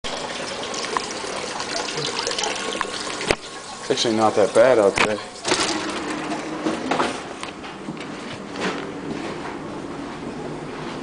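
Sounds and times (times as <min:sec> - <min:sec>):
running water rushing: 0:00.0 - 0:06.6.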